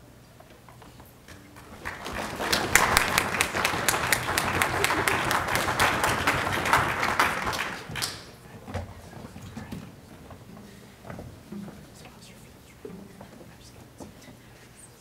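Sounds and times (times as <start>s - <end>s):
audience applauding: 1.5s - 8.4s.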